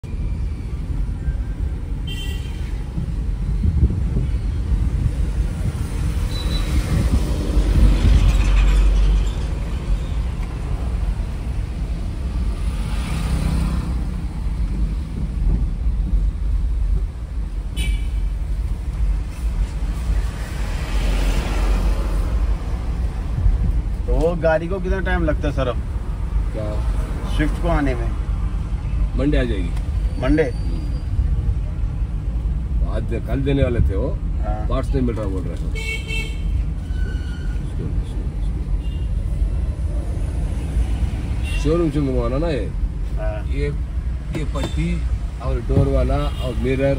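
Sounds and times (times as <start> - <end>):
car engine and road rumble: 0.0 - 46.9
passing traffic: 0.0 - 46.9.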